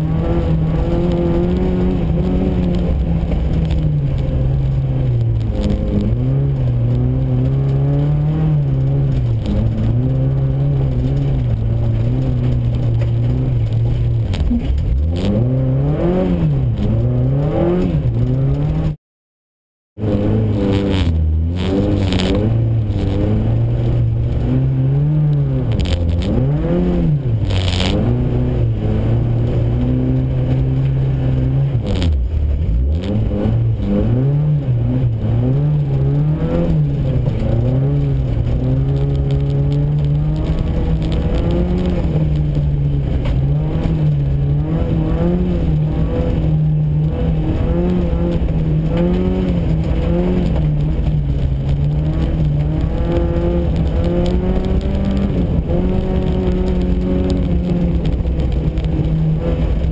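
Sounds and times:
rally car engine revving: 0:00.0 - 0:19.0, 0:20.0 - 0:59.9.

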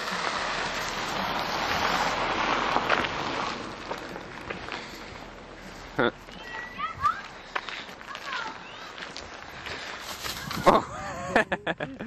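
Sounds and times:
car driving past: 0:00.0 - 0:06.0.

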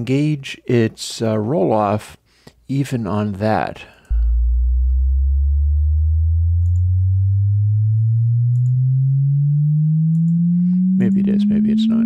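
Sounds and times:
sine-wave tone sweeping upward: 0:04.1 - 0:12.0.

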